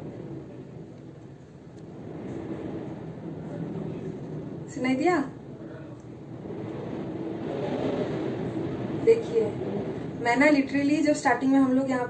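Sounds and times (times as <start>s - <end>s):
strong wind against building: 0.0s - 12.0s.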